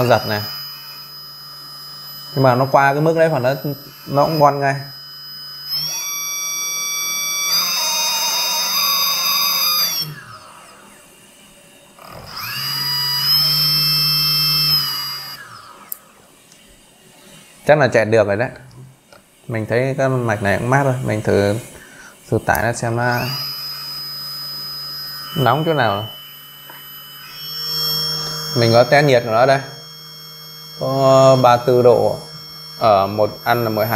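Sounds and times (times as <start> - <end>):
small electric motor whining: 0.0 - 18.1, 19.1 - 33.9.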